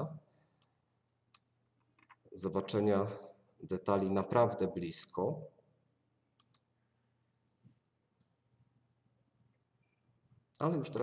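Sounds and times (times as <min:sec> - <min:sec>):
computer mouse clicks: 0:06.4 - 0:06.7.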